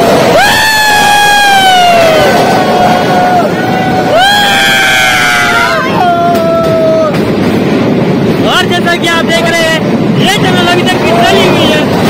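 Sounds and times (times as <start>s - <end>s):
passengers shouting: 0.0s - 12.0s.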